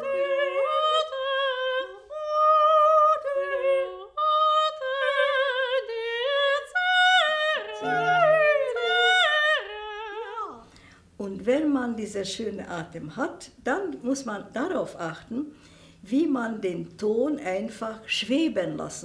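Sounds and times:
woman singing operatic soprano: 0.0 - 10.7
singer breaths: 10.6 - 11.2, 15.5 - 16.0.

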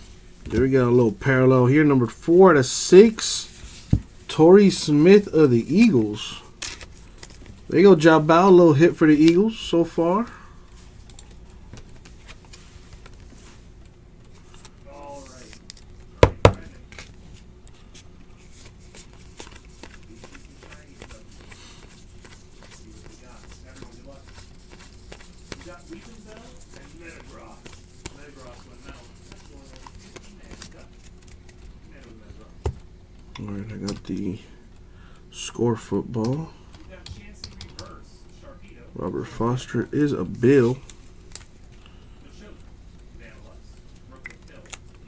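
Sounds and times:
cards rustling and clicking: 4.6 - 10.3, 11.0 - 32.8, 39.6 - 41.8, 43.3 - 45.0.

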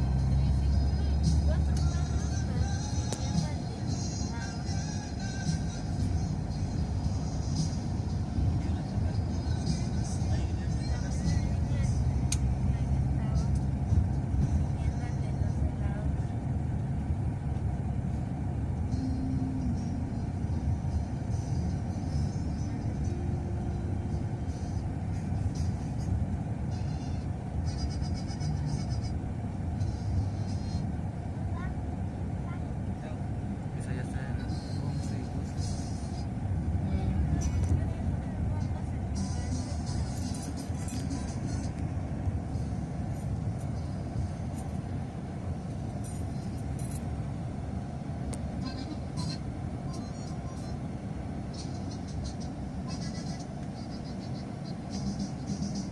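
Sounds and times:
background music: 0.0 - 15.7, 34.6 - 44.7
road and engine rumble: 0.0 - 55.9.

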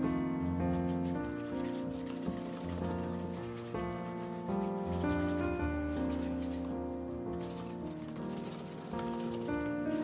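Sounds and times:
background music: 0.0 - 10.0
cloth rubbing leather shoe: 0.0 - 10.0.

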